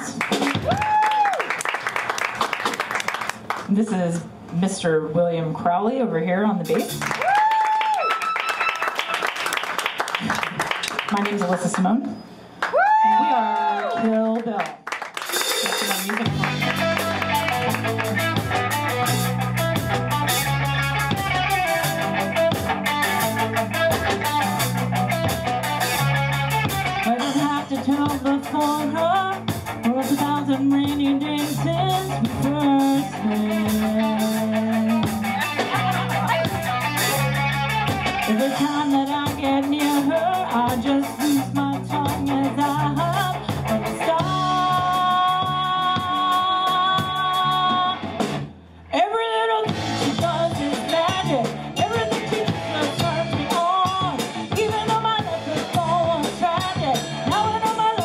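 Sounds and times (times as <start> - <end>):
live rock band playing: 0.0 - 1.0, 6.2 - 7.4, 8.0 - 10.2, 15.1 - 48.8, 49.6 - 58.0
woman singing lead vocal: 27.0 - 36.4, 38.3 - 48.0, 48.9 - 58.0.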